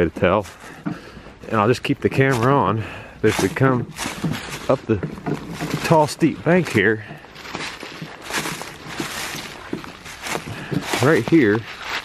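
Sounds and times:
footsteps in dry leaves: 1.6 - 12.0.

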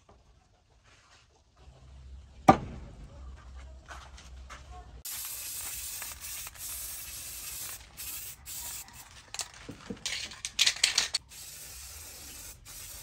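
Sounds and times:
aerosol spray can hissing: 5.0 - 9.4, 11.2 - 13.0.

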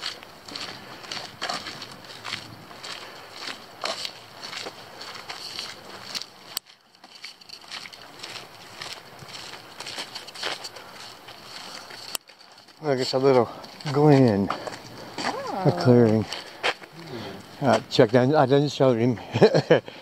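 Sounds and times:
footsteps on dirt trail: 0.0 - 19.7.

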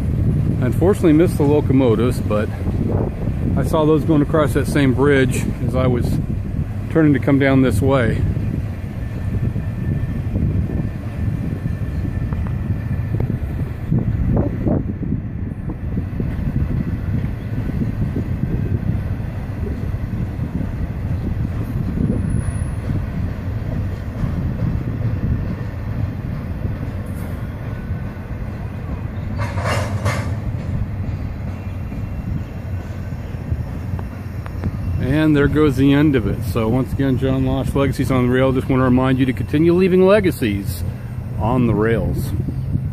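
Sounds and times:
train wheels rumbling on rail: 0.0 - 42.9.

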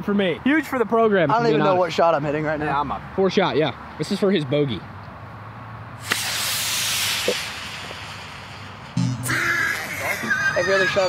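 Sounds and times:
wind hiss on microphone: 6.0 - 9.0.

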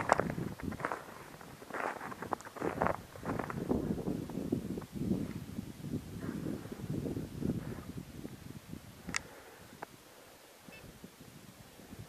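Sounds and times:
footsteps in snow: 0.0 - 3.9
faint high-pitched tone: 10.6 - 11.0.

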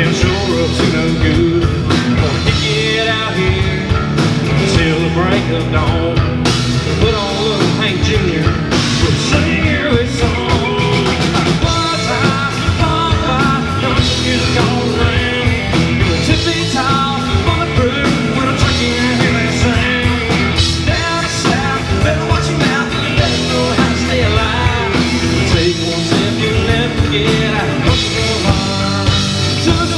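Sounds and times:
acoustic and electric guitars: 0.0 - 29.9
drums: 0.0 - 29.9
electric bass: 0.0 - 29.9.

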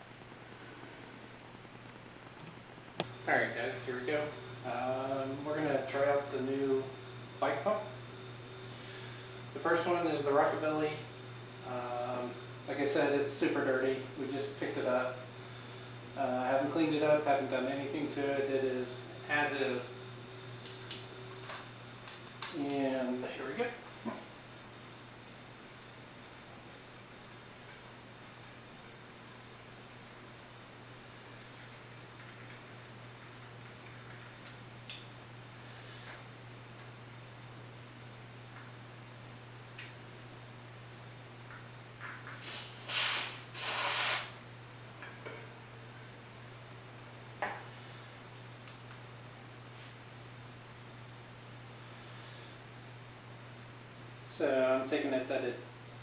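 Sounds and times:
low room hum: 0.0 - 56.0
air hissing from tyre valve: 42.3 - 44.4.

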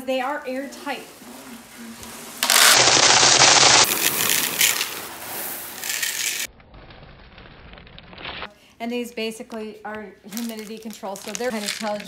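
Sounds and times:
chickpeas pouring into plastic bucket: 10.3 - 12.0.

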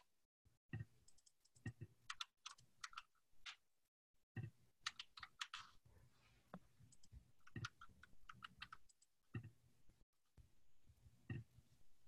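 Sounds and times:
typing on computer keyboard: 1.0 - 3.6, 4.8 - 5.8, 6.9 - 9.1.

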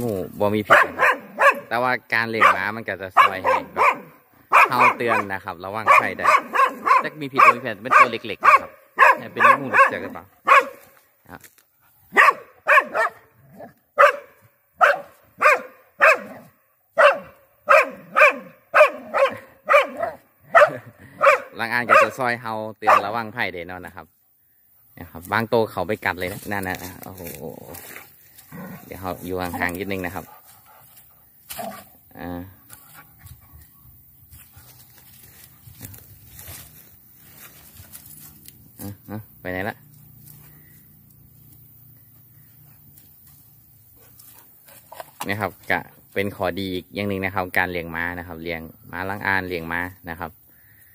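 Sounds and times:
dog barking: 0.6 - 10.9, 12.1 - 13.3, 14.0 - 23.2
rustling through weeds: 26.0 - 38.9.

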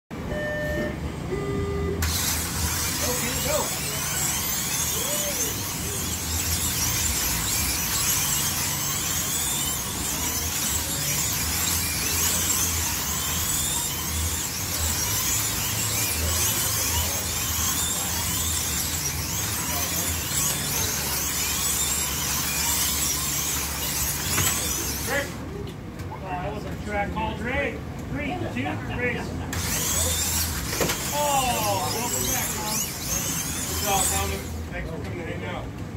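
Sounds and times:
short electronic tones: 0.2 - 2.1
slot car motors whining: 0.2 - 26.1, 26.7 - 35.9
tyres whirring on slotted track: 0.2 - 35.9.

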